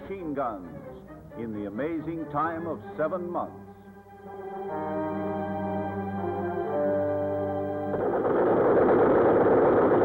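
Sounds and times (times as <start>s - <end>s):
machine gun automatic fire: 7.9s - 10.0s.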